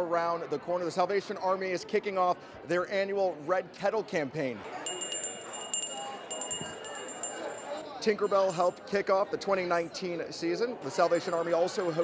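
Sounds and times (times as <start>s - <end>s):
small metal bell jingling: 4.9s - 8.8s, 11.2s - 12.0s.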